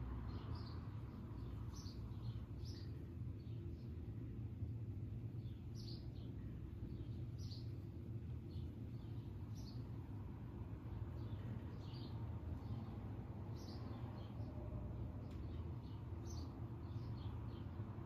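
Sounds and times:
small birds chirping: 0.0s - 18.0s
steady low hum: 0.0s - 18.0s.

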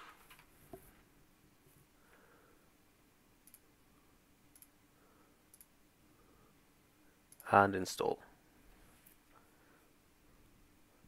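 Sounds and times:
faint computer mouse clicks: 3.4s - 3.6s, 4.5s - 4.7s.

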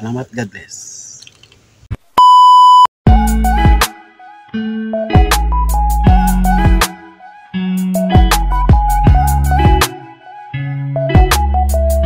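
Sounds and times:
test-tone beep: 2.2s - 2.9s
music with bass and plucked notes: 3.1s - 12.0s.

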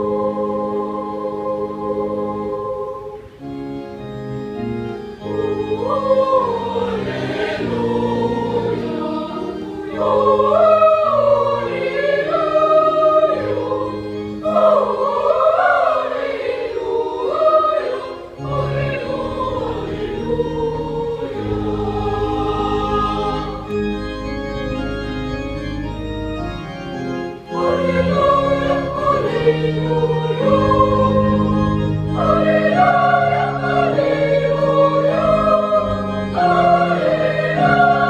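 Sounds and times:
boys' choir singing: 0.0s - 3.3s, 5.2s - 23.8s, 27.5s - 38.0s
organ chords: 0.0s - 38.0s.

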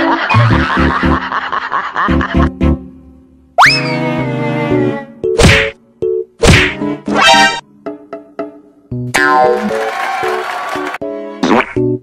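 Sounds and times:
bouncy comic music: 0.0s - 3.0s, 3.6s - 12.0s.

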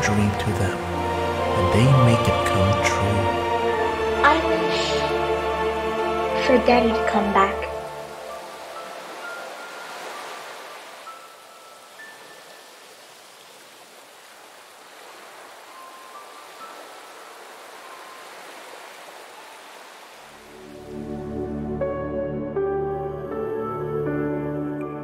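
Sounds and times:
low sustained music: 0.0s - 13.1s, 15.3s - 19.5s, 20.4s - 25.0s
rain hissing: 0.0s - 21.3s.

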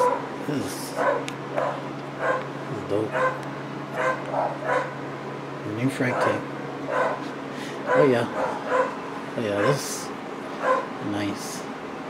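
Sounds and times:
small dog yapping: 1.0s - 2.5s, 3.1s - 3.4s, 4.0s - 5.0s, 6.1s - 7.2s, 7.9s - 9.0s, 10.6s - 10.9s.

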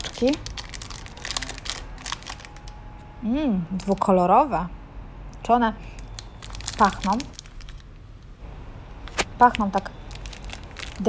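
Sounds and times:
plastic bag crinkling: 0.0s - 2.8s, 5.9s - 7.9s, 9.0s - 11.0s.

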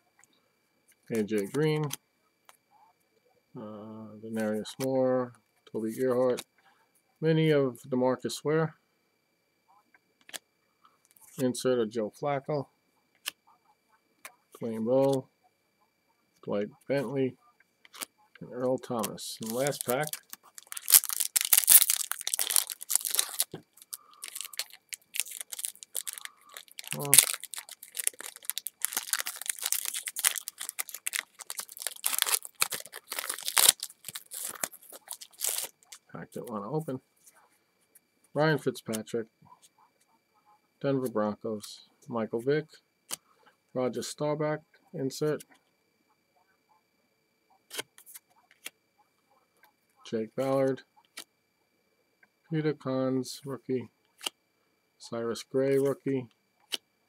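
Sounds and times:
card pack wrapper tearing: 19.0s - 35.9s.

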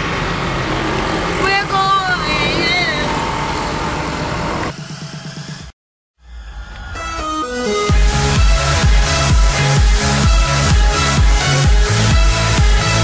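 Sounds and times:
street traffic hum: 0.0s - 4.8s.

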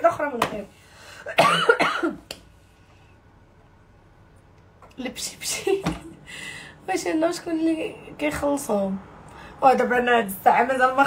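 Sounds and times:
woman coughing: 1.2s - 2.3s.

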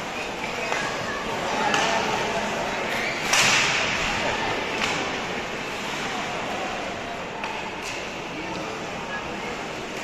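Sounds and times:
hockey stick slapping puck: 1.6s - 2.0s.

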